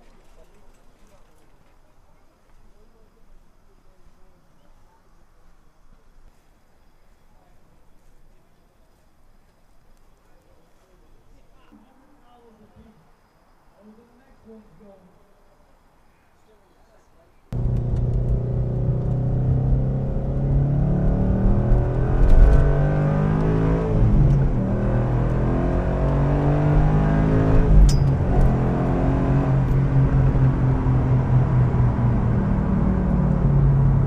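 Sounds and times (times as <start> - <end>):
car engine and road noise: 17.5 - 34.0.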